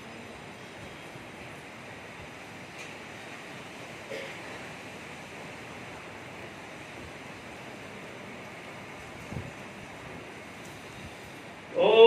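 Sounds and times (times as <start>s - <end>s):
steady rushing background noise: 0.0s - 12.0s.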